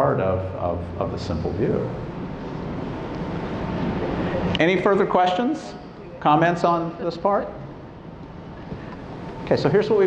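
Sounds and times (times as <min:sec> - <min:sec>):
rushing background noise in hall: 0:00.0 - 0:10.0.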